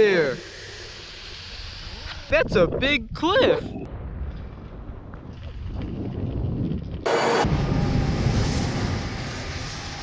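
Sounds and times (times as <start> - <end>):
loud burst of hiss: 0.0 - 2.3
wind rumbling on microphone: 1.5 - 10.0.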